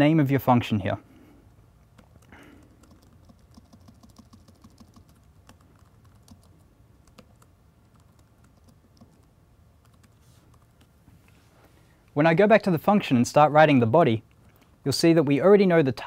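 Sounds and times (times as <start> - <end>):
keyboard typing: 1.8 - 10.9.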